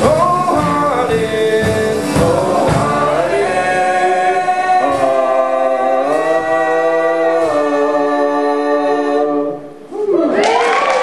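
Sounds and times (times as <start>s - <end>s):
acoustic guitar: 0.0s - 9.9s
men singing held notes: 0.0s - 9.9s.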